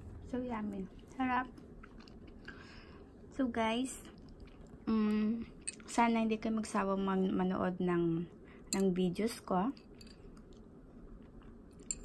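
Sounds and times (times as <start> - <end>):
faint chewing: 0.1 - 3.4, 4.0 - 6.0, 9.8 - 12.0.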